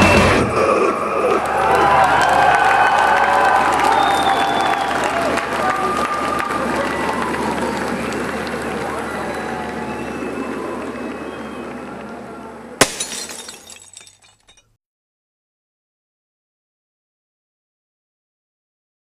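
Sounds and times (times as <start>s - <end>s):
crowd cheering and chatter: 0.0s - 12.8s
glass screen smashed by sledgehammer: 12.8s - 14.6s
glass shards tinkling: 12.8s - 14.8s.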